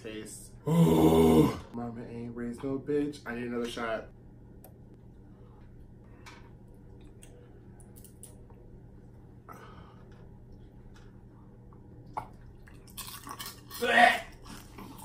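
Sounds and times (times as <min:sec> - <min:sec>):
low hum: 0:04.0 - 0:13.0.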